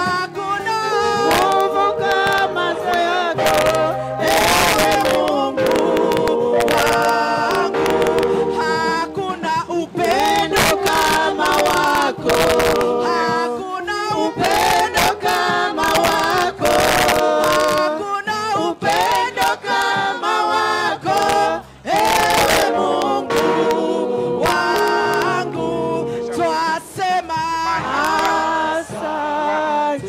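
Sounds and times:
mixed choir singing: 0.0 - 30.0.

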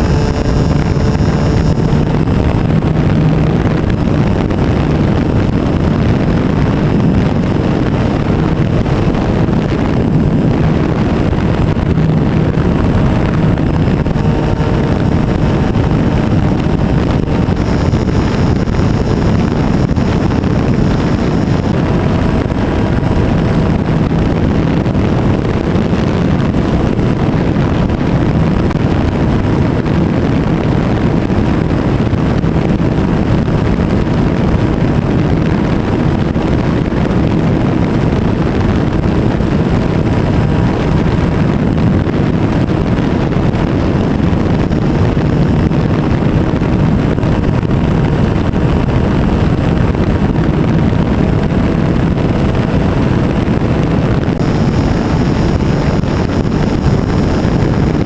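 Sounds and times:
model airplane engine running: 0.0 - 58.0
wind on microphone: 0.0 - 58.0.

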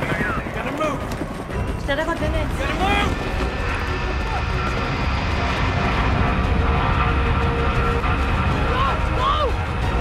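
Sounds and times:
jet engines rumbling: 2.4 - 10.0.

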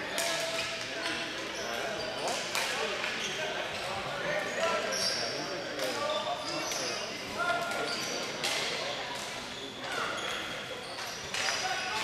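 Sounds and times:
stick and ball clacks on floor: 0.1 - 1.1, 2.2 - 3.2, 7.6 - 12.0.

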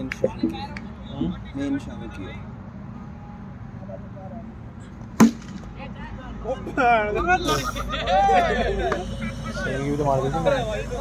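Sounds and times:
cricket bat striking ball: 5.2 - 5.7.

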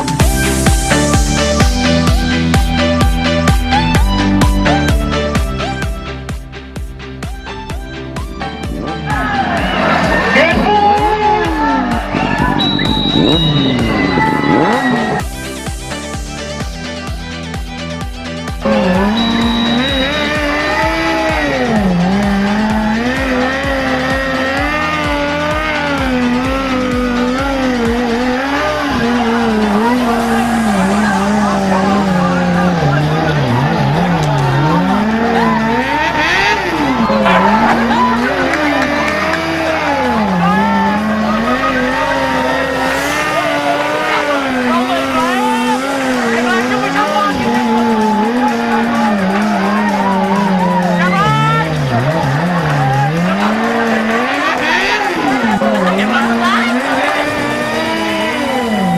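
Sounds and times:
motorcycle engines revving: 0.0 - 58.9.

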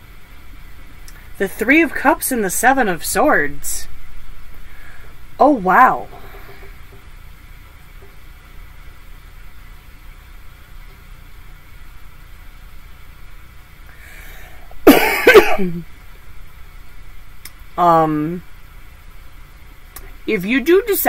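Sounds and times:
low steady room hum: 0.0 - 21.0
woman coughing: 14.8 - 15.8.

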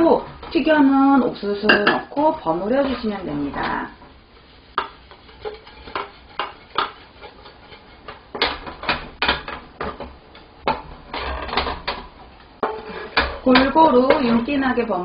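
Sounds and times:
wooden spatula scraping a frying pan: 0.0 - 15.0.

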